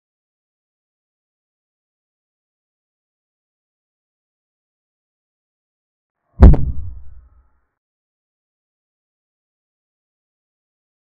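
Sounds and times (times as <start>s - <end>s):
deep boom: 6.4s - 7.3s.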